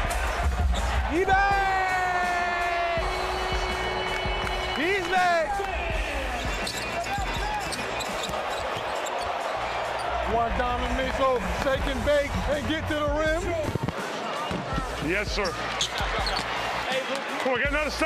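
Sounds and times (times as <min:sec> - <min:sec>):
crowd shouting: 0:00.0 - 0:12.8, 0:13.7 - 0:18.0.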